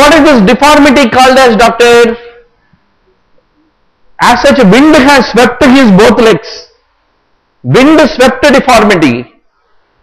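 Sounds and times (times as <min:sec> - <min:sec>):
man's voice: 0:00.0 - 0:02.5, 0:04.2 - 0:06.8, 0:07.6 - 0:09.4.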